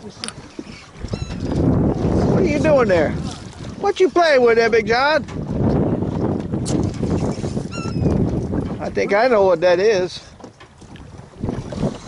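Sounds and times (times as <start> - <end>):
sea water slapping boat: 0.0 - 12.0
wind buffeting microphone: 0.0 - 12.0
high-pitched squeak: 1.1 - 1.5, 7.7 - 8.2.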